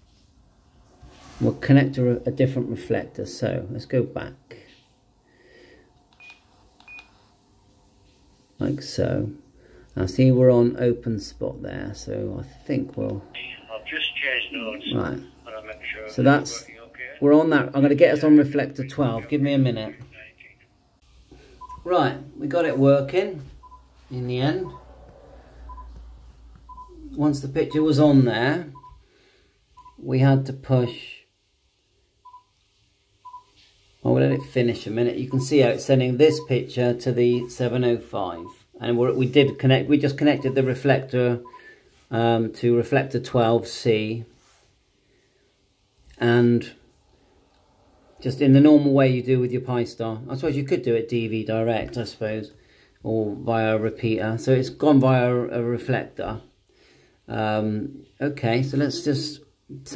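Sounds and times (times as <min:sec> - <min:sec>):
faint key-press beeps: 0:06.1 - 0:07.1
short electronic beep: 0:24.6 - 0:25.0
high key-press beeps: 0:25.7 - 0:25.9.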